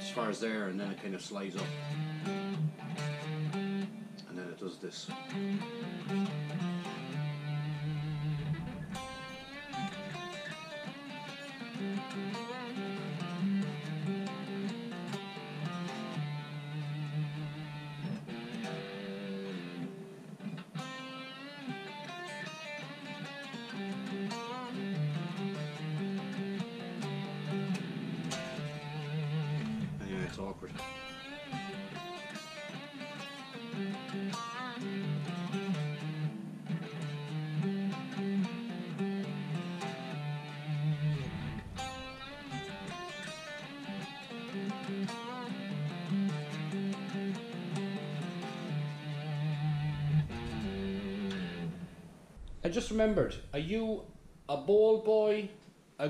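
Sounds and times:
electric guitar lead lick: 0.0s - 52.6s.

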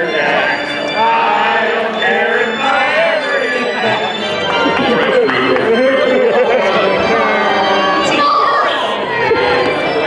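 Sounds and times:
man singing over loudspeakers: 0.0s - 10.0s.

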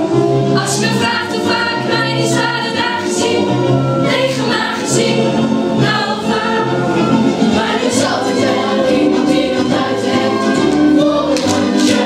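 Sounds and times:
children's chorus singing: 0.6s - 12.0s.

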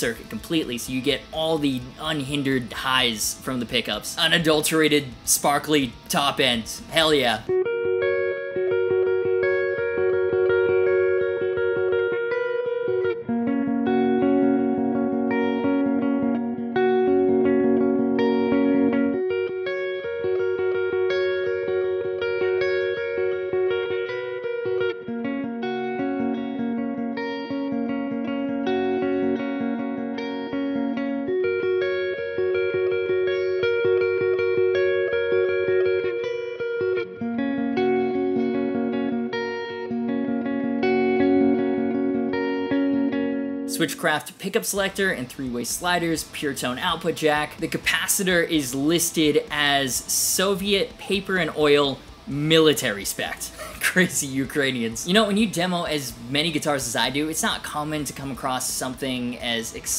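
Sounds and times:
electric guitar chords: 0.0s - 59.9s.

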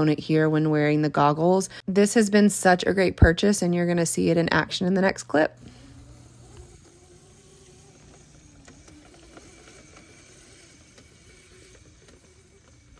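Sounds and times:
small dirt bike motor hum: 5.2s - 12.9s.

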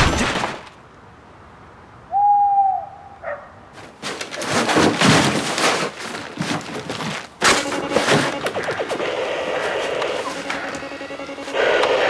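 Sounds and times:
owl hoot: 2.1s - 3.2s
rustling and knocking: 3.8s - 8.9s.

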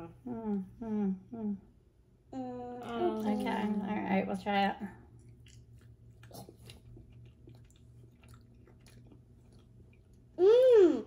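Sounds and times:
chewing: 5.1s - 10.4s.

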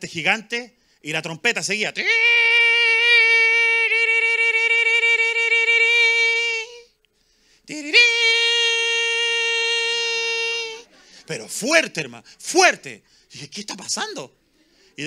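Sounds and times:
man imitating trumpet with voice: 2.0s - 6.9s, 7.7s - 10.8s.

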